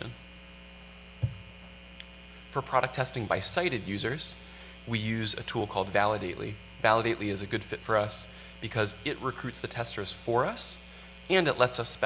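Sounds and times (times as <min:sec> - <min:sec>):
electrical mains hum: 0:00.0 - 0:12.0
short low thump: 0:01.2 - 0:01.5.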